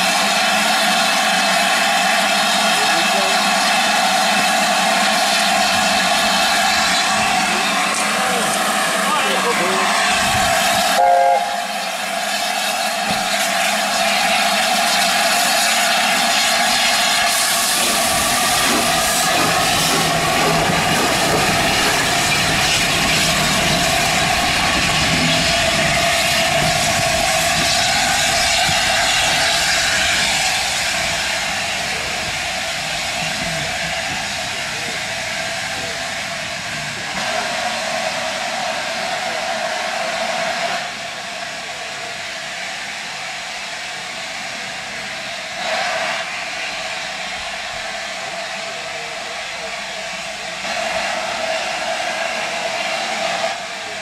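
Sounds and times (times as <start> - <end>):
steam locomotive hissing steam: 0.0 - 54.0.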